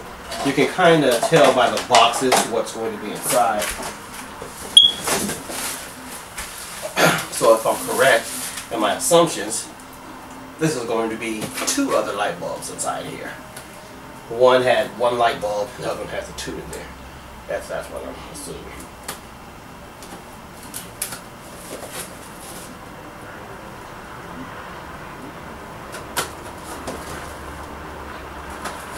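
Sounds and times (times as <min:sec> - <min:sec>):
cardboard boxes rustling and scraping: 0:04.5 - 0:08.7, 0:21.4 - 0:22.8, 0:26.4 - 0:27.7.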